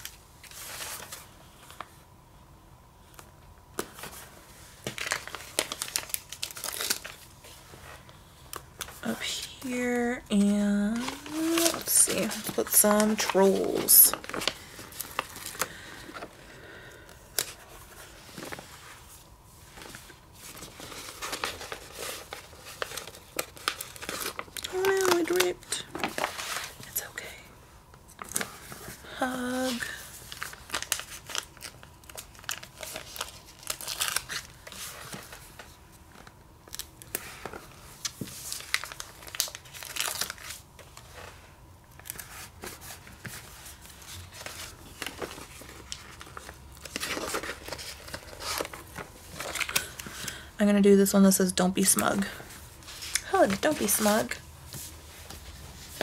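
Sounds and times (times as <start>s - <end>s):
stickers peeling crackles: 8.5s - 15.9s, 21.1s - 26.3s
sticker sheets rustling: 8.6s - 16.4s, 17.4s - 27.1s, 42.0s - 50.3s, 51.9s - 56.0s.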